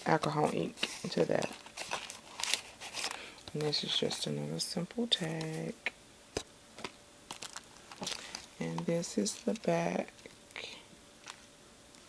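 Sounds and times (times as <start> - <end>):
paper rustle: 0.1 - 4.2, 6.8 - 9.6.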